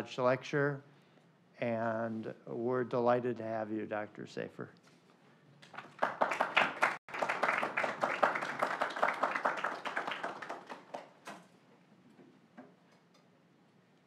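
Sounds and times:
audience applauding: 0:05.7 - 0:11.2.

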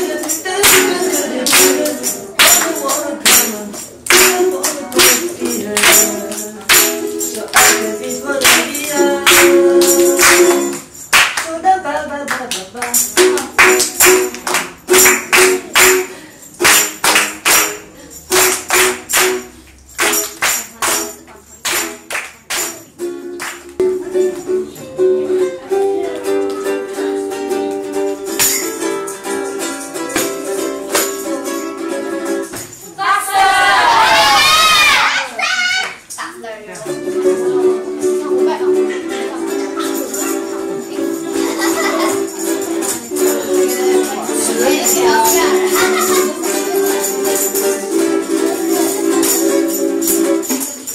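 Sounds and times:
group singing: 0:00.0 - 0:10.8, 0:32.9 - 0:35.2, 0:39.1 - 0:49.5
hand clapping: 0:00.0 - 0:11.6, 0:12.3 - 0:24.5, 0:26.1 - 0:26.9, 0:27.7 - 0:31.3
strummed ukulele chords: 0:00.0 - 0:11.9, 0:12.9 - 0:33.0, 0:36.7 - 0:50.9
children shouting: 0:33.0 - 0:36.3, 0:44.0 - 0:49.2.

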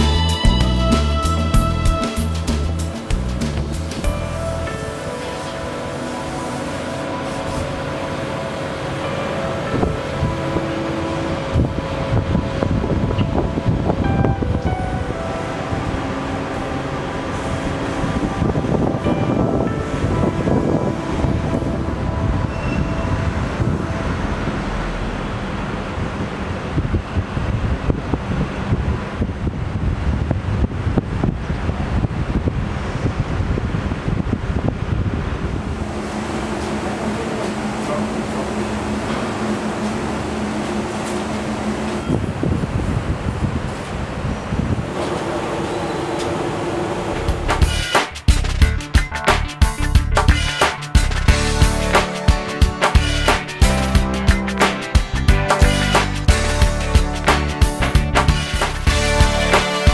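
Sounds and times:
quiet music with held notes: 0:00.0 - 0:25.3, 0:48.8 - 0:59.9
wind rushing over microphone: 0:09.6 - 0:39.0, 0:41.2 - 0:48.4.

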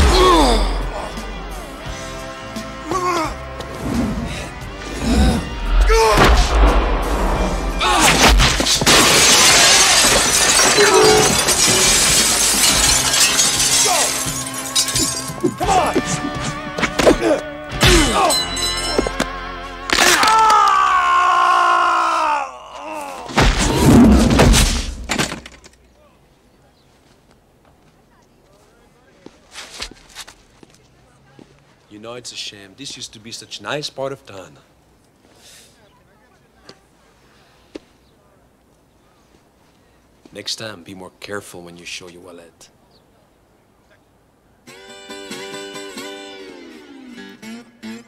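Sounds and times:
broken glass showering down: 0:07.8 - 0:15.6
glass window smashing: 0:07.8 - 0:16.0, 0:23.4 - 0:25.7
footsteps on pavement: 0:26.8 - 0:31.9.

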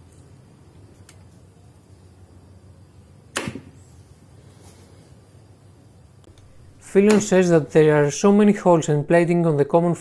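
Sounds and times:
wooden stick snapping back: 0:03.3 - 0:03.7, 0:06.3 - 0:07.4.

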